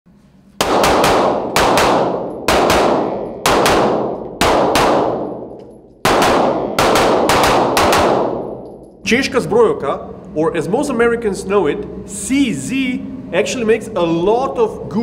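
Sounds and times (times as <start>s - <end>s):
pistol shots echoing indoors: 0.6s - 9.0s.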